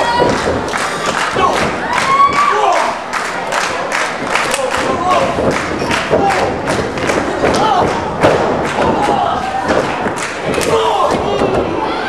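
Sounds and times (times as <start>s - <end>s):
people shouting: 1.3s - 3.0s, 7.4s - 12.0s
thuds and slaps in wrestling ring: 4.8s - 11.8s.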